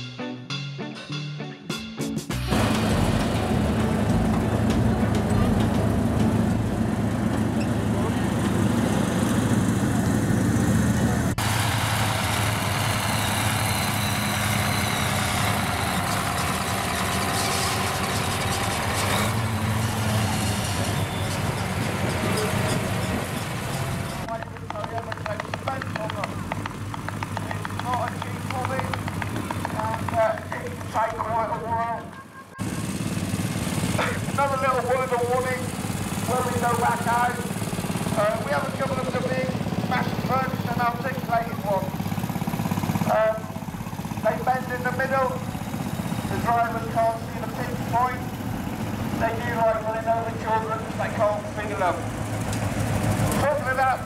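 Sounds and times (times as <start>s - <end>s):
music: 0.0s - 5.9s
tractor diesel engine running: 2.3s - 54.0s.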